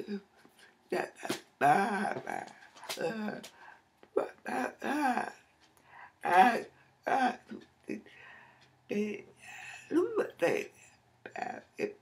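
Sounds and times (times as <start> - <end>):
woman making wordless vocal sounds: 0.9 - 5.4, 6.2 - 8.1, 8.9 - 12.0.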